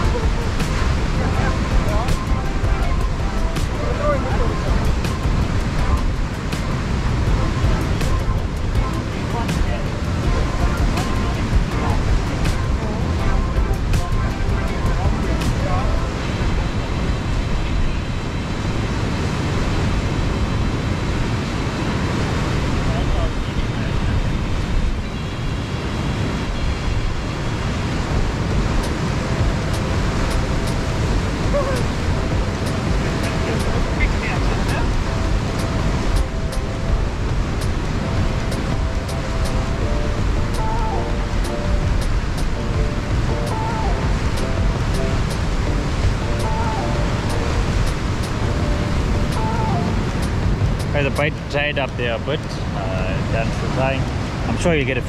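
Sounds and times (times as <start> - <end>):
sea surf breaking over rocks: 0.0 - 55.0
wind rumbling on microphone: 0.0 - 55.0.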